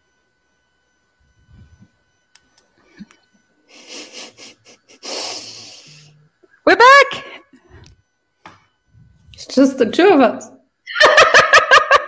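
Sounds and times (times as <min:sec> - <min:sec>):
person laughing quietly: 0:02.9 - 0:05.6.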